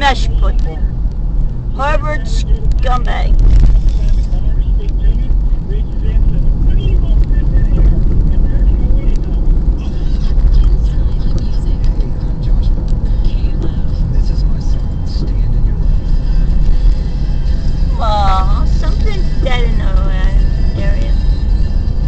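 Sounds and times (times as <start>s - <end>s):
car engine and tyres rumbling: 0.0s - 22.0s.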